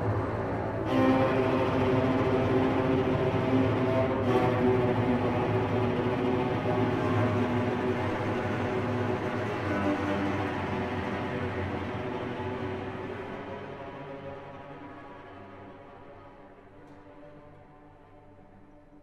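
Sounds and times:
string orchestra holding chords: 0.0s - 17.6s.

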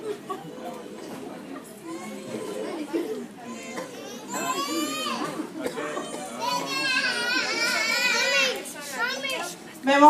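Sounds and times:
children talking and calling out: 0.0s - 9.8s.

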